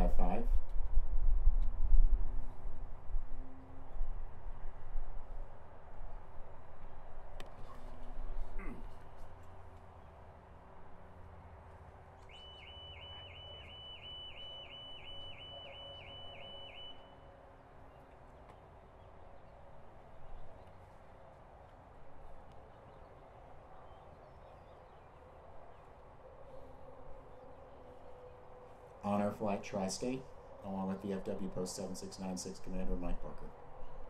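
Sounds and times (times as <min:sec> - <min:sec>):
faint outdoor background: 0:00.0 - 0:34.0
songbird singing high notes: 0:12.3 - 0:17.3.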